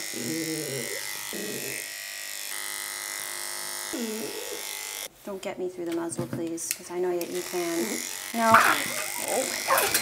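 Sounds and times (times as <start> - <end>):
electric clipper buzzing: 0.0 - 5.1, 7.2 - 10.0.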